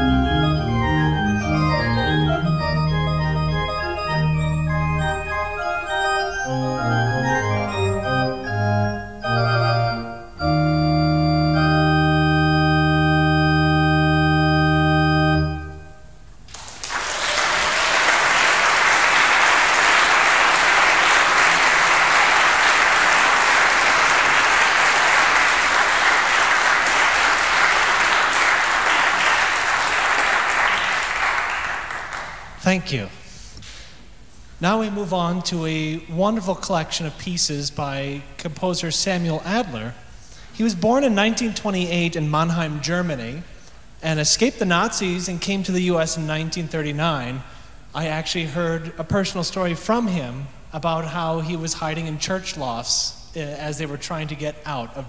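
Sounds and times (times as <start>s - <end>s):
organ chords with pedal bass: 0.0s - 16.1s
audience applauding: 16.5s - 32.6s.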